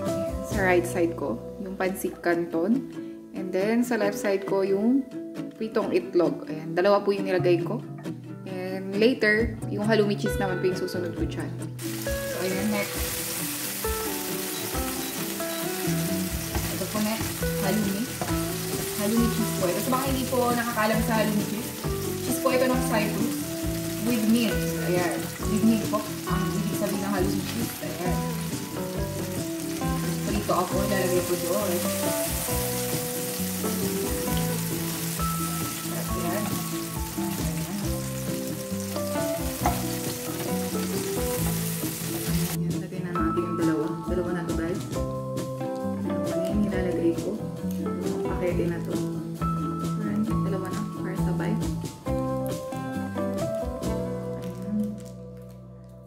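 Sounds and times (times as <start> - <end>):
background music: 0.0 - 56.0
cheese sizzling in a pan: 11.8 - 42.6.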